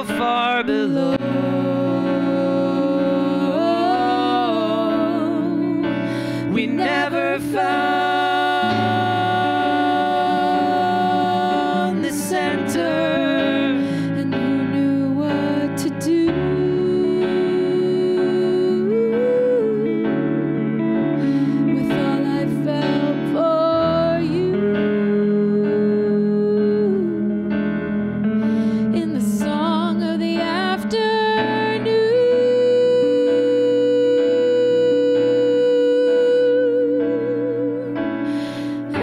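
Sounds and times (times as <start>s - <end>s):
acoustic guitar: 0.0s - 39.0s
keyboard: 0.0s - 39.0s.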